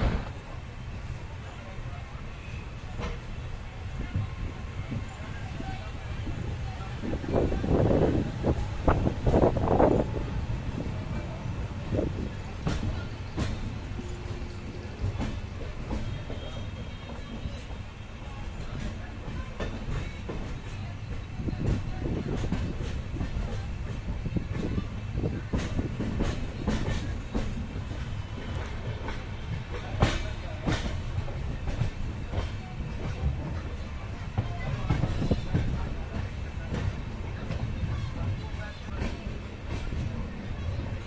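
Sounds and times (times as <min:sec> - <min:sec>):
train rumble: 0:00.0 - 0:41.0
train wheels clattering over rails: 0:02.7 - 0:41.0.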